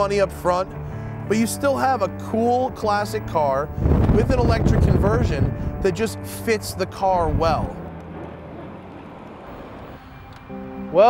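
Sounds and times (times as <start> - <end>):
tyre and road noise: 6.9 - 11.0.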